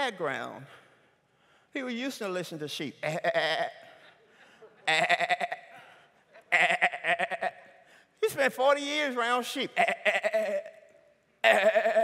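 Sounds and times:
man imitating sheep bleat: 3.0 - 3.8, 4.9 - 5.7, 6.6 - 7.6, 9.7 - 10.8, 11.4 - 12.0.

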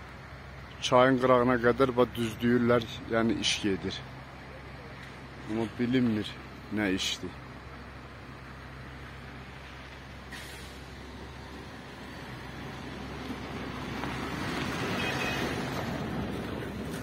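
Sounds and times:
vehicle passing: 1.3 - 17.0.

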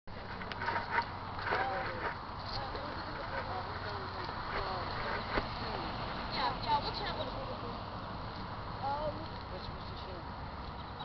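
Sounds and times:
distant people talking: 0.1 - 11.0.

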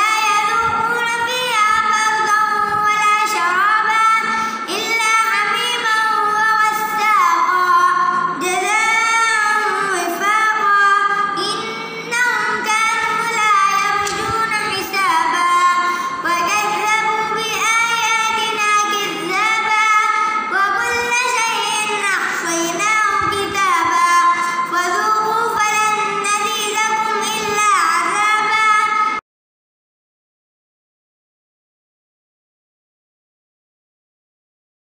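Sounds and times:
boy reciting melodically: 0.0 - 29.2.

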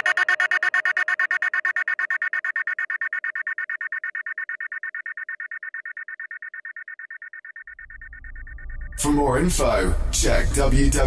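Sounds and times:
low rumble: 7.8 - 11.0.

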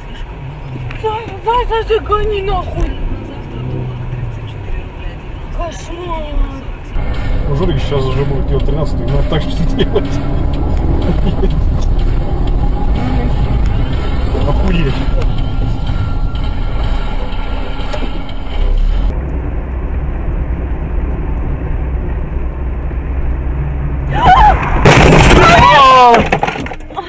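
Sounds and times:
car cabin and road rumble: 0.0 - 27.0
loud collision: 7.0 - 19.1, 24.5 - 26.0.

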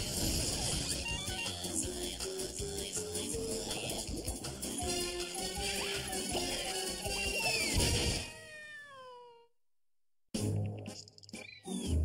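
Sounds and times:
cartoon cat meowing: 0.8 - 1.7, 5.4 - 9.5.

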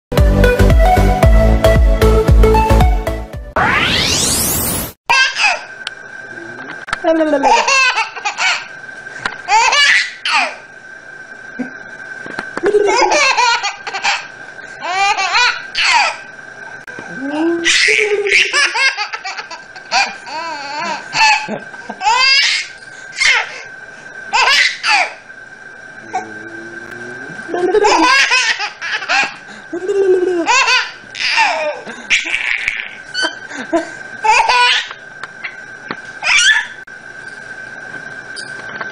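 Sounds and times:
baby laughing: 7.4 - 8.7, 9.5 - 10.6, 12.7 - 16.2, 17.6 - 23.6, 24.4 - 25.2, 27.5 - 33.4, 34.2 - 35.0
baby giggling: 27.5 - 33.4.

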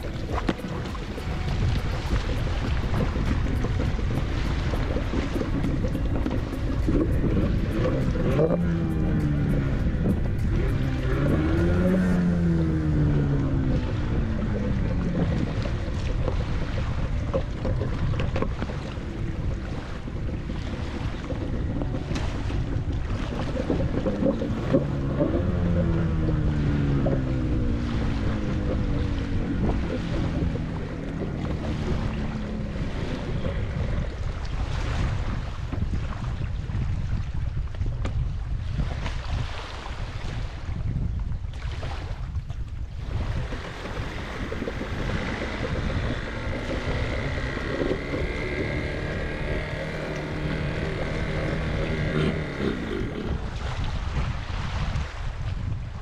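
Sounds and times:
two-stroke engine running: 0.0 - 34.8, 43.0 - 54.4
water sounds: 0.0 - 56.0
wind noise on microphone: 0.0 - 56.0.

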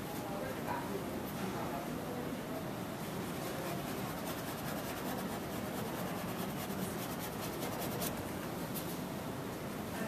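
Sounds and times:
paintbrush scrubbing on canvas: 3.2 - 8.4.

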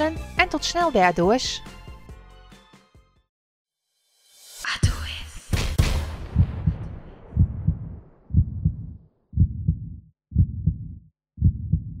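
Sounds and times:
heartbeat thumps: 5.8 - 12.0.

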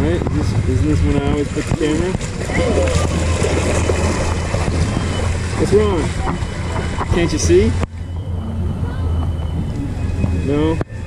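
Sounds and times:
moving water rumble and hiss: 0.0 - 11.0.

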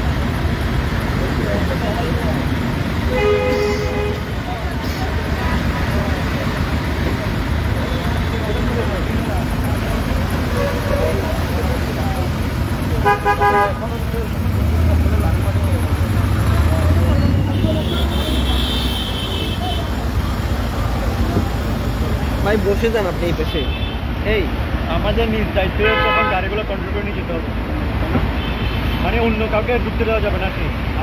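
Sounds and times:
vehicle engines rumbling: 0.0 - 31.0
vehicle horn honking: 3.1 - 4.3, 13.0 - 13.8, 17.3 - 19.9, 25.8 - 26.4.

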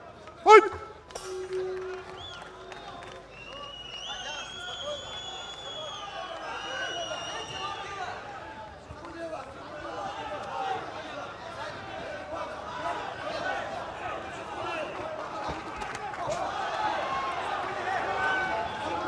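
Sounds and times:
long high whistles: 1.2 - 8.0
crowd shouting: 4.2 - 19.0.

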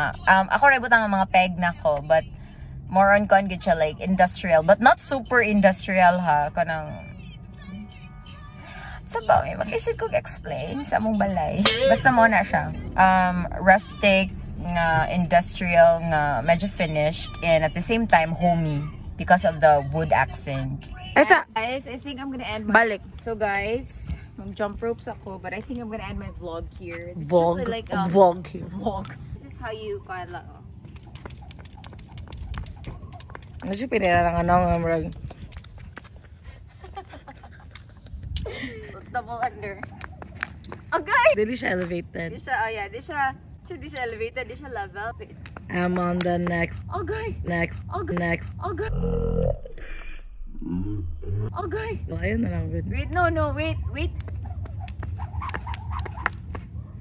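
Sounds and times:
skipping rope slapping concrete: 30.8 - 36.2, 54.1 - 56.8.

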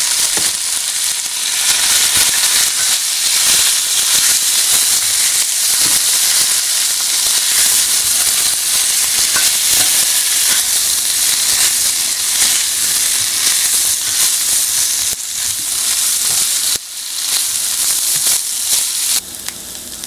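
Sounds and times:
meat sizzling in hot oil: 0.0 - 20.0.

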